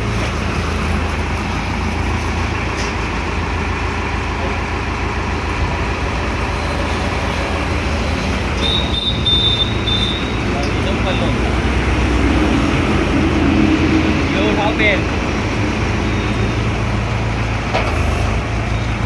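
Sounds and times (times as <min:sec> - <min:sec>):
tractor engine running: 0:00.0 - 0:19.0.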